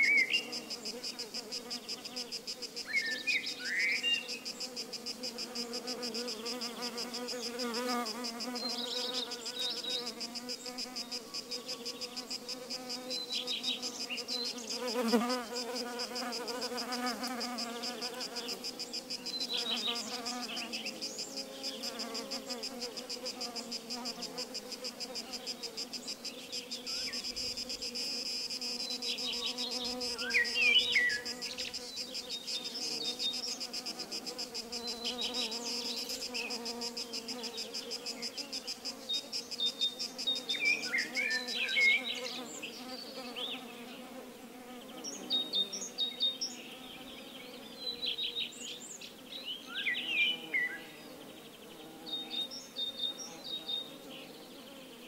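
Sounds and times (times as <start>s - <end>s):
bees buzzing: 4.2s - 48.0s.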